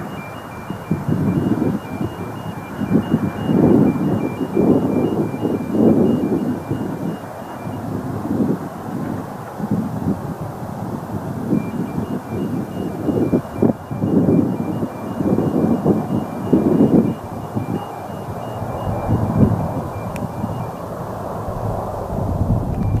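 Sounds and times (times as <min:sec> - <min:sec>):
turboprop engines rumbling: 0:00.0 - 0:23.0
wind buffeting microphone: 0:00.0 - 0:23.0.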